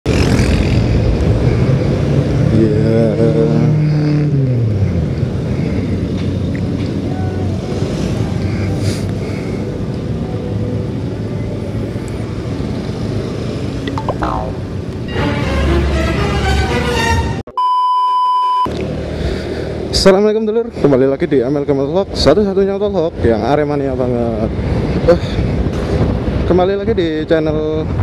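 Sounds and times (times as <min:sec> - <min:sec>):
road noise: 0:00.0 - 0:17.5, 0:18.5 - 0:28.0.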